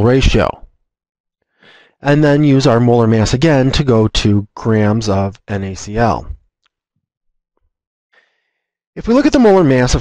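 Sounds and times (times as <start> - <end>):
man's soft inhale: 1.5 - 2.0, 8.1 - 8.8.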